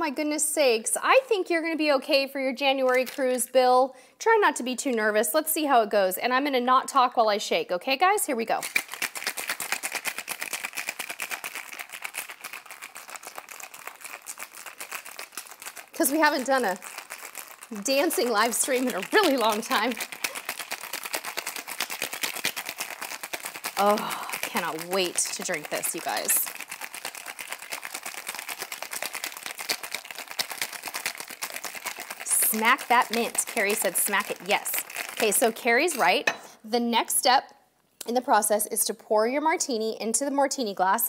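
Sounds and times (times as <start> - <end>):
ice rattling in cocktail shaker: 2.8 - 3.4, 8.5 - 36.4.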